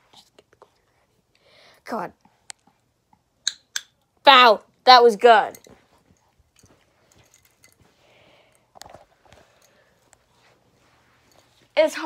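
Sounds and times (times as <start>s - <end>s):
faint small clicks and rustles: 5.5s - 11.9s.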